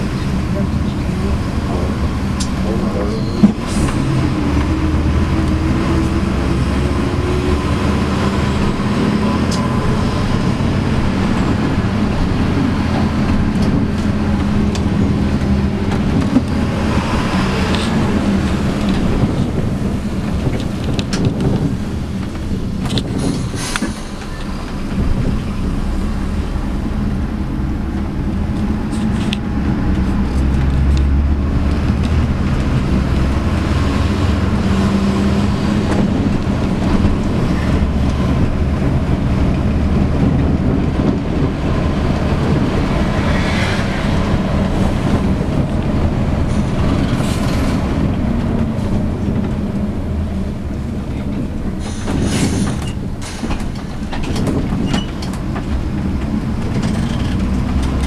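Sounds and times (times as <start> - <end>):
bus diesel engine running: 0.0 - 58.0
road and body noise: 0.0 - 58.0.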